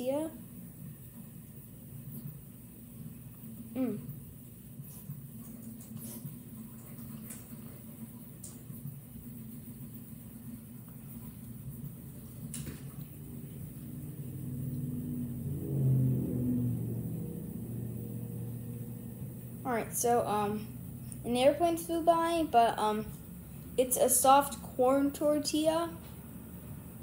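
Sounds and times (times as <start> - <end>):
airplane flying over: 14.0 - 19.7.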